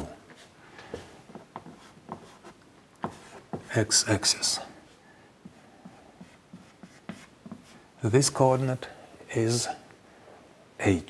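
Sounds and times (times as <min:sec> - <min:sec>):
chalk tapping on blackboard: 0:01.3 - 0:03.7, 0:05.4 - 0:07.8.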